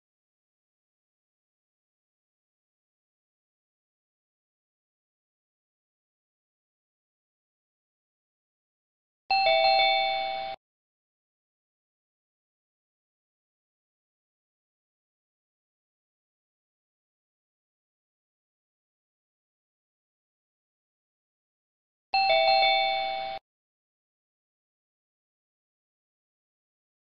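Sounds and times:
two-note bell chime: 0:09.3 - 0:10.6, 0:22.2 - 0:23.4.

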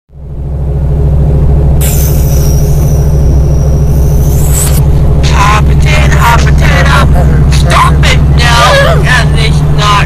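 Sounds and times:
low rumbling drone: 0:00.1 - 0:10.0.

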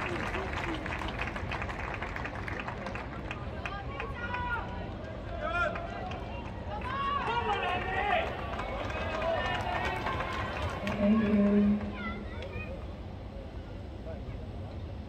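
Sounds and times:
crowd murmur: 0:00.0 - 0:15.0
spectators talking: 0:00.0 - 0:15.0.

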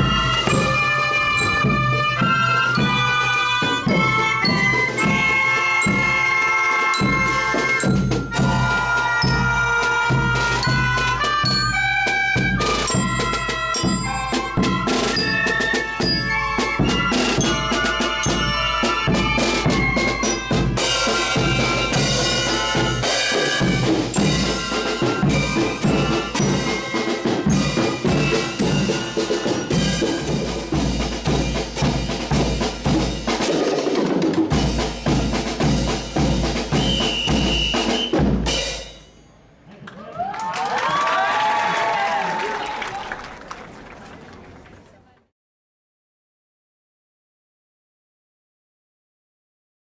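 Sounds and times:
marching band playing: 0:00.0 - 0:39.6
crowd voices: 0:39.4 - 0:45.3.

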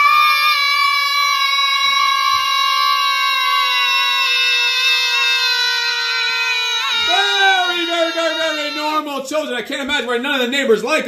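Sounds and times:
children yelling high pitch: 0:00.0 - 0:09.2.

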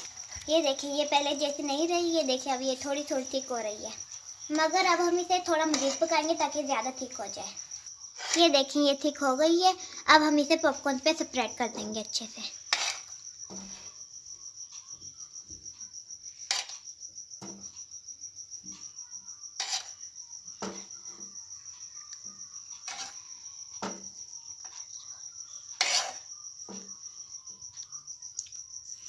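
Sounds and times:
cricket trilling: 0:00.0 - 0:29.0
metal spoon scraping a pan: 0:05.6 - 0:06.2, 0:08.2 - 0:08.6, 0:12.6 - 0:13.9, 0:16.5 - 0:16.8, 0:19.6 - 0:20.0, 0:22.8 - 0:23.3, 0:25.8 - 0:26.3.

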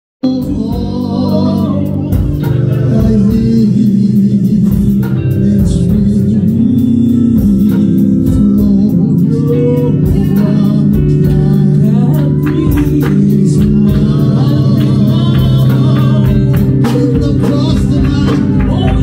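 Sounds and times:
bass guitar: 0:00.2 - 0:19.0
guitar: 0:00.2 - 0:19.0
man singing into a microphone: 0:00.2 - 0:19.0.

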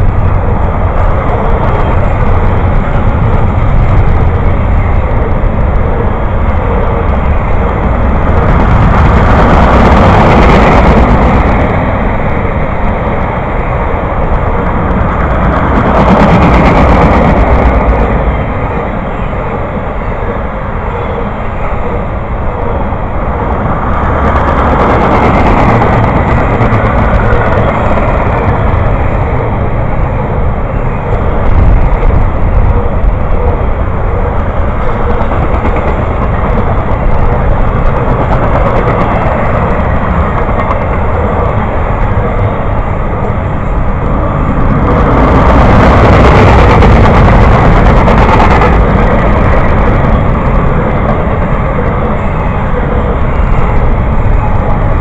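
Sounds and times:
train wheels clattering on rails: 0:00.0 - 0:55.0.

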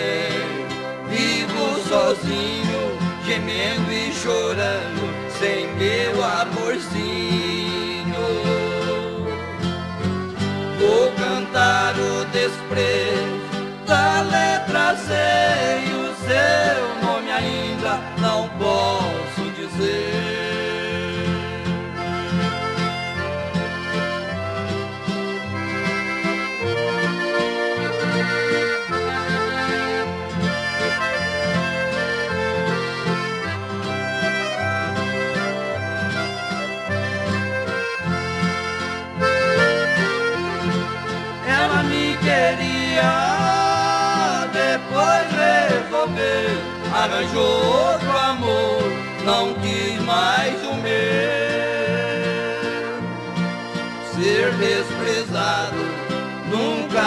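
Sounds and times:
person singing: 0:00.0 - 0:09.5, 0:10.8 - 0:21.7, 0:41.4 - 0:53.2, 0:54.0 - 0:57.0
accordion melody: 0:00.0 - 0:57.0
steady bass accompaniment: 0:00.0 - 0:57.0.

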